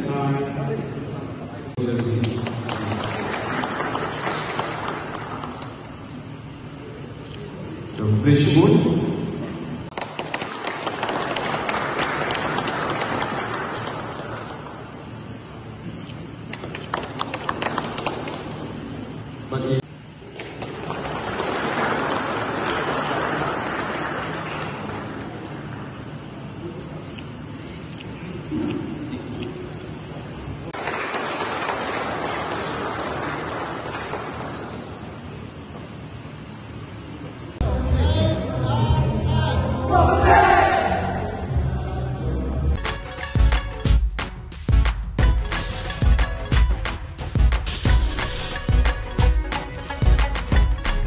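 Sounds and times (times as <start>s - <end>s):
audience applauding: 1.8s - 6.0s, 9.9s - 15.2s, 16.5s - 19.1s, 20.2s - 26.1s, 30.7s - 35.4s.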